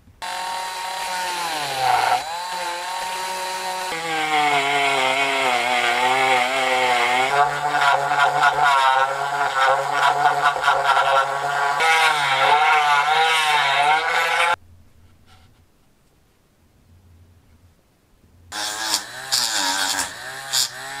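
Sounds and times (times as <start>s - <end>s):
rotary tool grinding metal: 0.2s - 14.6s, 18.5s - 21.0s.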